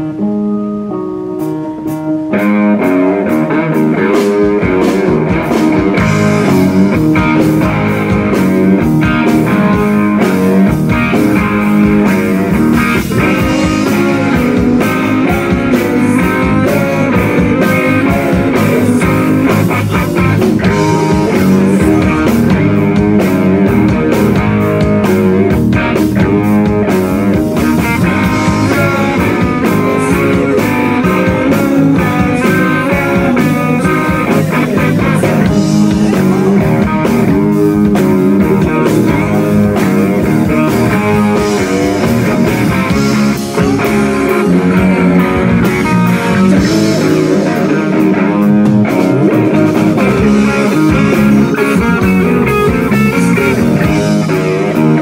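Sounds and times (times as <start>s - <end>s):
live rock band playing: 0.0s - 55.0s.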